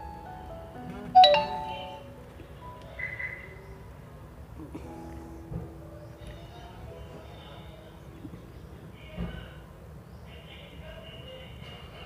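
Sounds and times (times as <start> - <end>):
soft instrumental music: 0.0 - 3.1
bright chime ringing: 1.2 - 2.1.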